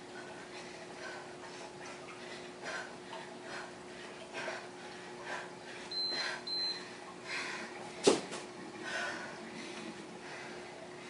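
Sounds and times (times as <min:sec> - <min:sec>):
hard rhythmic breathing: 0:00.0 - 0:08.0, 0:08.8 - 0:11.0.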